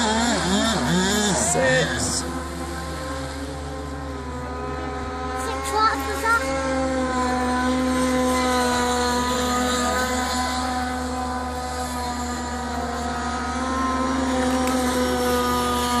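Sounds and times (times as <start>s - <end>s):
model boat motor running: 0.0s - 16.0s.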